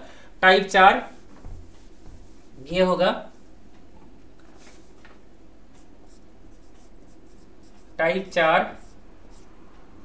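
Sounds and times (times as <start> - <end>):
marker writing on whiteboard: 5.7 - 9.6.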